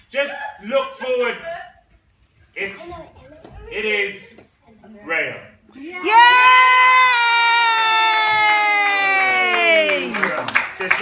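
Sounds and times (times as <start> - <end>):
person cheering yeah: 5.9 - 10.1.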